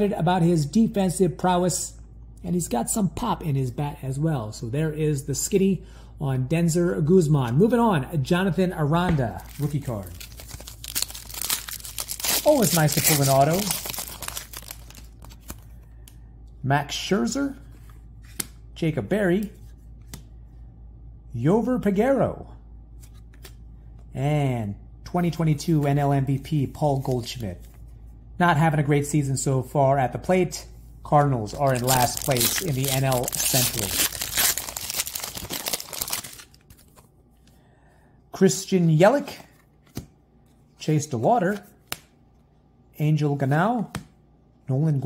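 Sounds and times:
foil wrapper crinkling: 9.4s - 15.6s, 31.6s - 37.0s.

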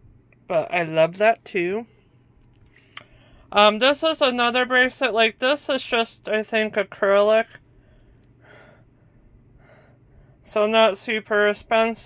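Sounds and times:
woman breathing softly: 2.0s - 3.5s, 7.7s - 10.4s.

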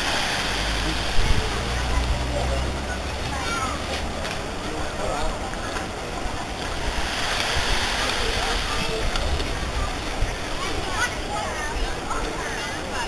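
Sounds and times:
faint chatter of passers-by: 0.0s - 13.0s.

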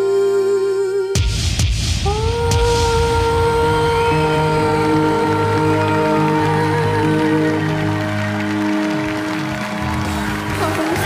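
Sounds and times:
girl singing a long note: 0.0s - 1.3s, 2.0s - 8.2s.

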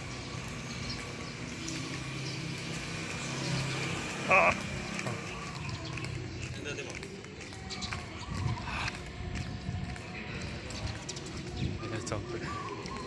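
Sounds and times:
indistinct voices: 3.7s - 13.0s
footsteps on concrete: 4.6s - 11.8s.

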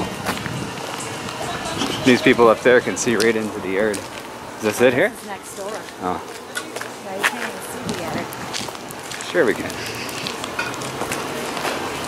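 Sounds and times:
footsteps on pavement: 0.0s - 12.0s
urban background noise: 0.0s - 12.0s.

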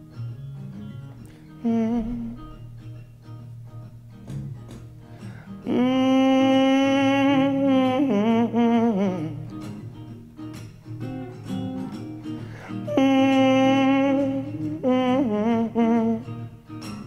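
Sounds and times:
plucked guitar notes: 0.0s - 17.0s
held guitar note with vibrato: 11.0s - 17.0s
live band music: 11.0s - 17.0s.

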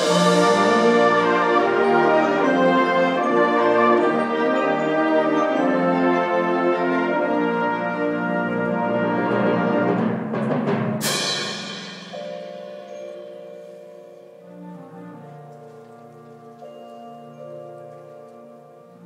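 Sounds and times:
wind band playing chords: 0.0s - 19.0s.

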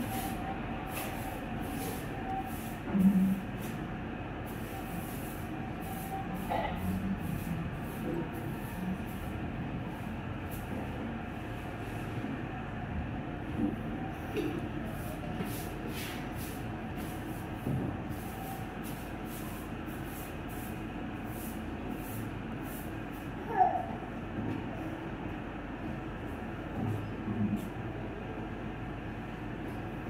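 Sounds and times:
low rumbling background noise: 0.0s - 30.0s.

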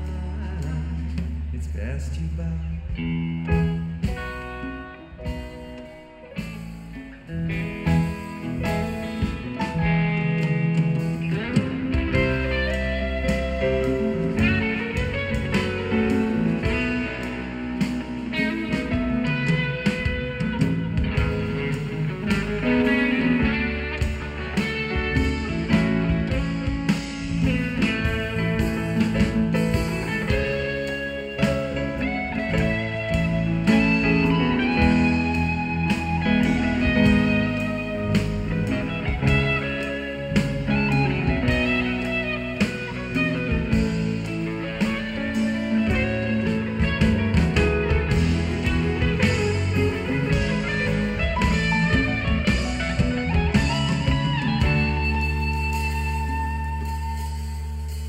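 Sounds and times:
bass guitar: 0.0s - 58.0s
drum kit: 0.0s - 58.0s
electric guitar lead: 0.0s - 58.0s.

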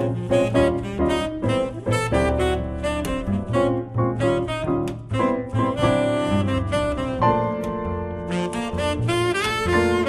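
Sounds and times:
double bass plucking low notes: 0.0s - 10.0s
tenor saxophone jazz melody: 0.0s - 10.0s.

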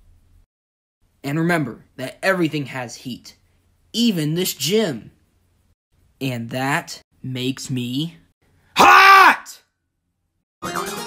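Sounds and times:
man yelling wailing cry: 8.8s - 9.6s.

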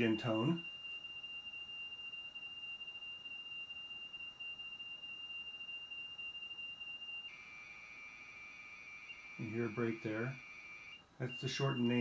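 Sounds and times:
high-pitched data tone: 0.0s - 12.0s.

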